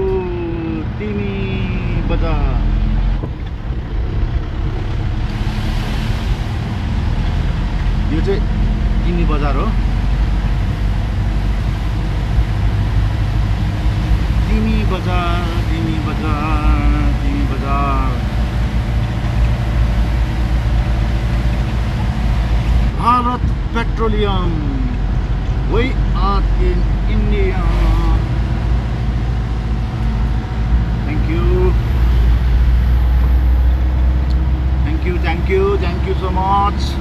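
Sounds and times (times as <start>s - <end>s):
car engine rumble: 0.0s - 37.0s
tyre noise on wet road: 1.6s - 37.0s
person speaking: 14.4s - 18.4s, 22.9s - 28.3s.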